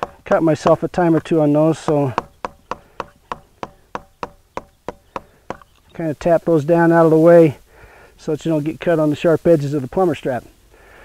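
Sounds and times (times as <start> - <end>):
light tapping on metal strap: 0.0 - 5.9.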